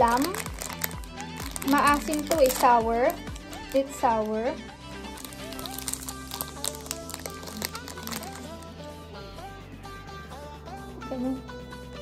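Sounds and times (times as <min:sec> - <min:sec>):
light melodic background music: 0:00.0 - 0:12.0.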